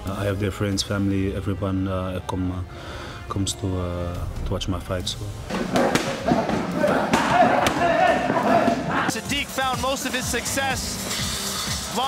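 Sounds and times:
punches thudding: 5.5 - 9.1.

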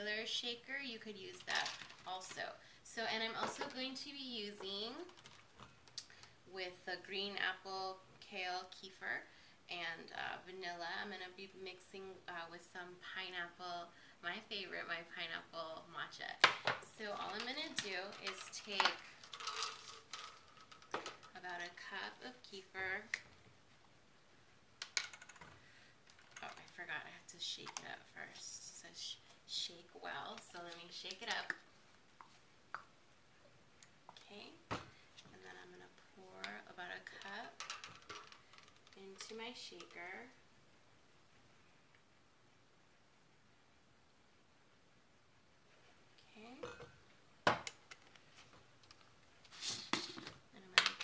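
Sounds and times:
person speaking: 13.0 - 20.4, 38.9 - 40.4.

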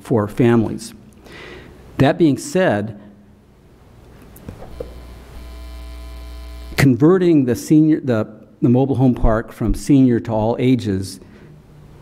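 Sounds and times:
electrical mains hum: 0.0 - 12.0.

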